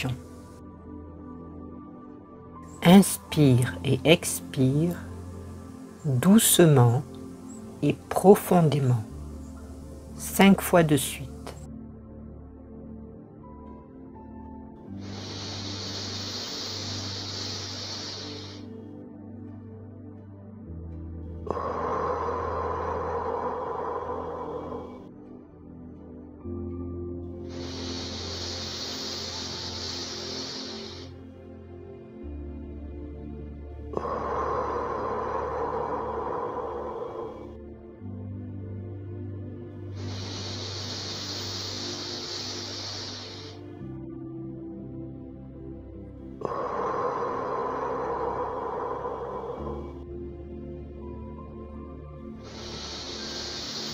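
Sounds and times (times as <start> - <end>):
soft ambient music: 0.0 - 53.9
slow deep breath: 13.7 - 19.2, 21.3 - 25.6, 27.3 - 31.7, 33.5 - 38.1, 39.7 - 44.2, 46.0 - 53.9
slow airy exhale: 14.5 - 19.0, 21.5 - 25.3, 27.3 - 31.5, 33.6 - 38.0, 39.7 - 44.2, 46.1 - 53.9.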